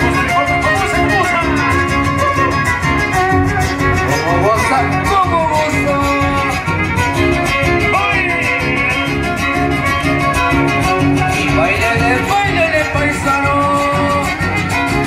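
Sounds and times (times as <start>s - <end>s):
strummed guitars: 0.0s - 15.0s
violin sliding melody: 0.0s - 15.0s.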